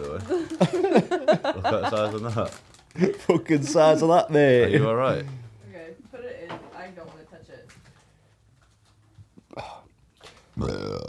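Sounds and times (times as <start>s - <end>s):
person burping: 10.6s - 11.0s.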